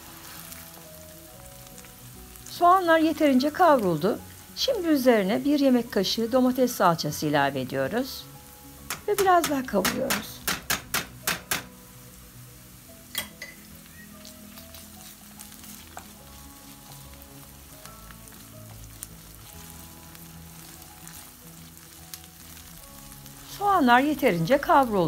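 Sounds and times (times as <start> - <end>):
onions sizzling in oil: 0.0 - 25.0
wooden spoon stirring: 14.1 - 25.0.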